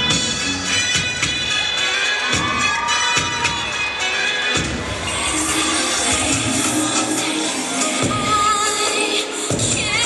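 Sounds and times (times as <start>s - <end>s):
crowd cheering and shouting: 0.0s - 10.0s
loud dance music: 0.0s - 10.0s.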